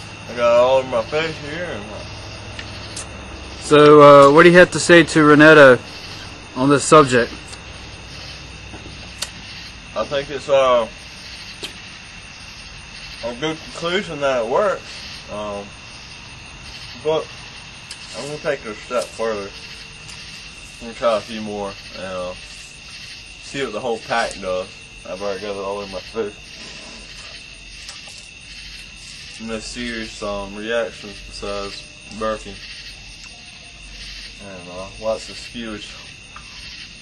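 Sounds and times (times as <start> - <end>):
low background rumble and hiss: 0.0 - 37.0.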